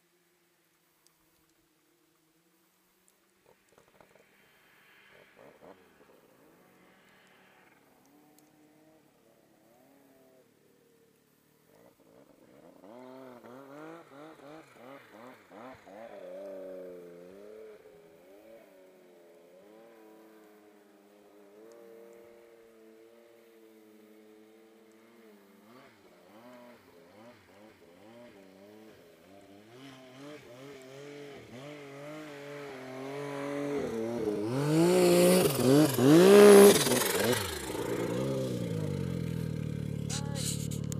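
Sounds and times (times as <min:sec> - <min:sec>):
snowmobile engines revving: 0:12.6 - 0:21.8, 0:25.0 - 0:40.9
snowmobile idling: 0:30.9 - 0:40.9.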